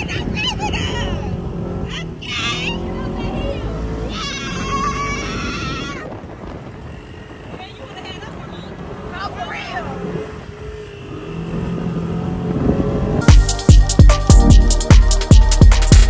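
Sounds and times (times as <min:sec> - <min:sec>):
voices calling out: 0:00.0 - 0:12.7
wind buffeting microphone: 0:00.0 - 0:13.3
buggy engine running: 0:00.0 - 0:16.0.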